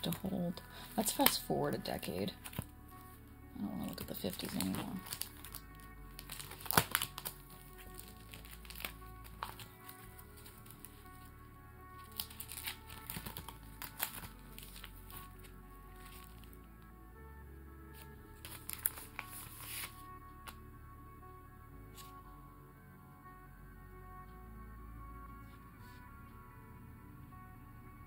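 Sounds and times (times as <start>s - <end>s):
soft background music: 0.0s - 28.0s
cards clicking and rustling: 6.2s - 7.4s, 8.0s - 9.7s, 12.1s - 16.5s.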